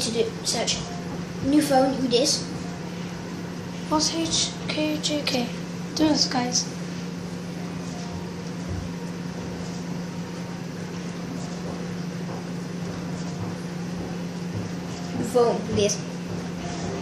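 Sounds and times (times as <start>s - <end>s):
ceiling fan electrical hum: 0.0s - 17.0s
fan air whoosh: 0.0s - 17.0s.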